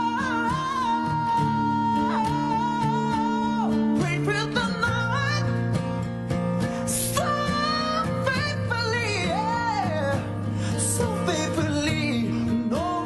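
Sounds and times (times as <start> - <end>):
man singing: 0.0 - 5.9, 6.7 - 13.0
acoustic guitar: 0.0 - 13.0.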